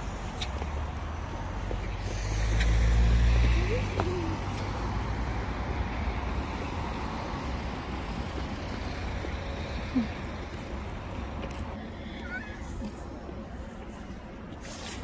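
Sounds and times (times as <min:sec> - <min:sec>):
road traffic noise: 0:00.0 - 0:15.0
vehicle passing close by: 0:01.4 - 0:09.8.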